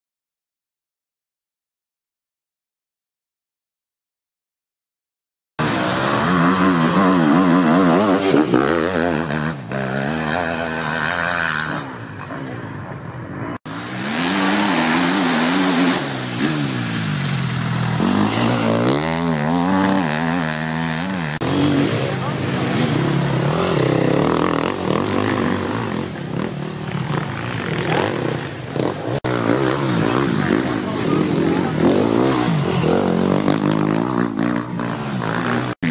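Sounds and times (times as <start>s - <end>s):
motorcycle engines revving: 5.6s - 35.9s.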